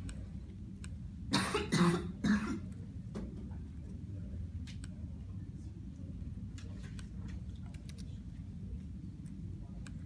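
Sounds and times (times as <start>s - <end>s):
person coughing: 1.3s - 2.7s.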